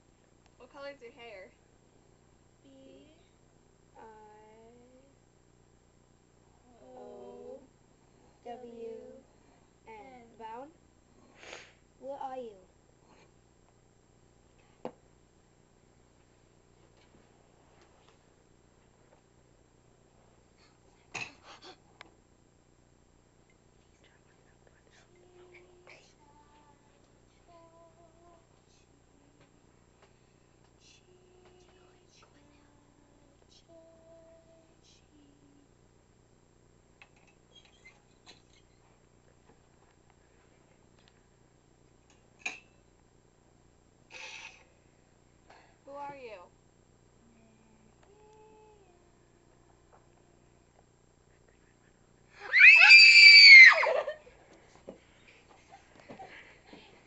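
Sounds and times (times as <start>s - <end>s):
faint whispering: 23.8s - 27.6s, 51.2s - 52.4s
person screaming high-pitched: 52.4s - 54.1s.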